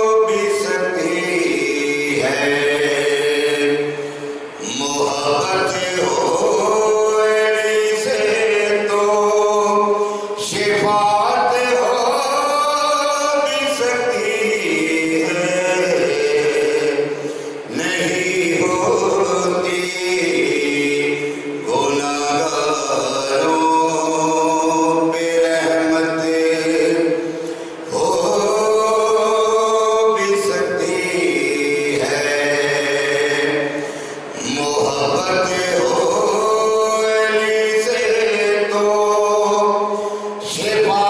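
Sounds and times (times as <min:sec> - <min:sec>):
man chanting unaccompanied: 0:00.0 - 0:41.0.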